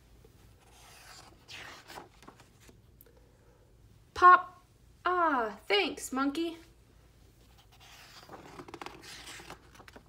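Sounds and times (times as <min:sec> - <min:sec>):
book page turning: 0:00.6 - 0:02.8, 0:07.4 - 0:10.0.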